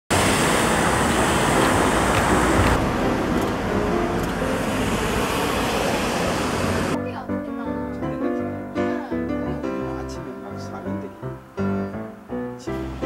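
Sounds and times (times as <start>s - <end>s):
city street traffic: 0.1s - 8.1s.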